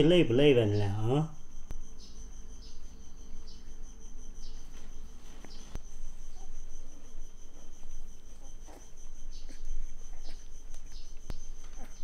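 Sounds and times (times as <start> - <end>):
insect chirping trill: 0.0 - 12.0.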